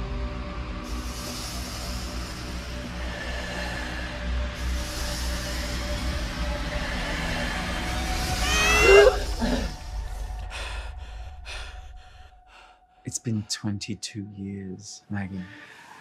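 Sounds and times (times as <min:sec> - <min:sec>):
low rumbling drone: 0:00.0 - 0:13.5.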